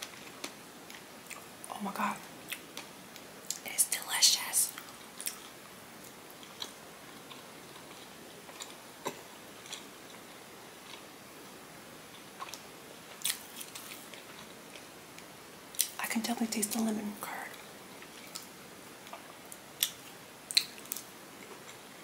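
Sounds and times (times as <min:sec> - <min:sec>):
close chewing with mouth clicks: 0:00.0 - 0:01.5, 0:04.7 - 0:11.1, 0:12.1 - 0:16.0, 0:17.5 - 0:21.9.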